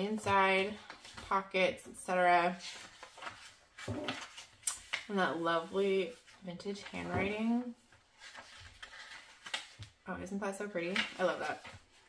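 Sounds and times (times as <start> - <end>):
paper pages rustling: 0.3 - 1.5, 2.5 - 10.0, 10.8 - 12.0.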